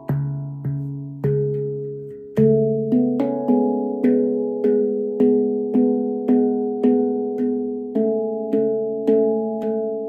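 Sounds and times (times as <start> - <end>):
handpan notes ringing: 0.0 - 10.0.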